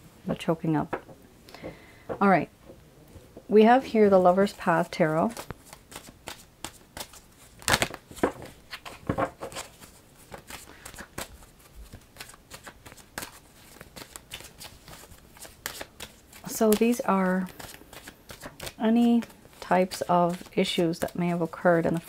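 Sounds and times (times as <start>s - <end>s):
cards being shuffled: 4.0s - 22.0s.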